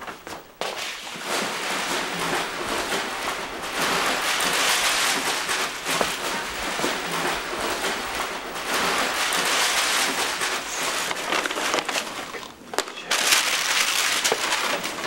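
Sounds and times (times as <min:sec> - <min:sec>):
paper bags rustling: 0:00.3 - 0:15.0.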